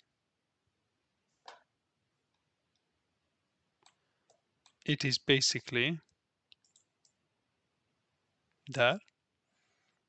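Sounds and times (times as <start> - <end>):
computer mouse clicking: 3.8 - 4.9, 6.0 - 7.2.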